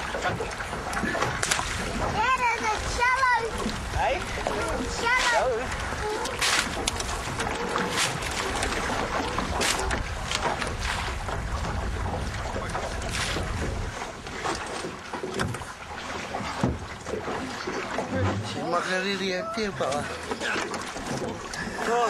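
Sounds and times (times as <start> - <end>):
wind buffeting microphone: 0.0 - 14.8
water against boat hull: 0.0 - 22.0.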